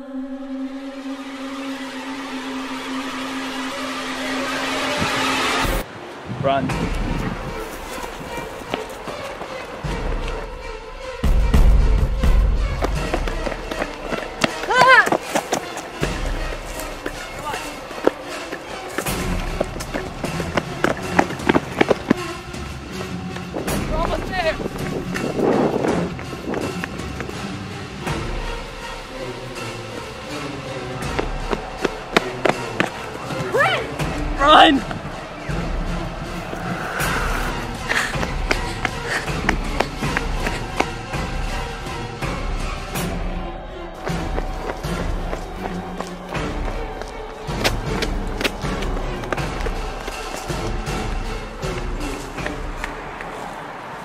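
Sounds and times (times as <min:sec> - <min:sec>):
people running footfalls: 0:06.8 - 0:10.6, 0:11.2 - 0:27.6, 0:29.9 - 0:36.6, 0:37.2 - 0:54.0
deep rumble: 0:34.0 - 0:41.2.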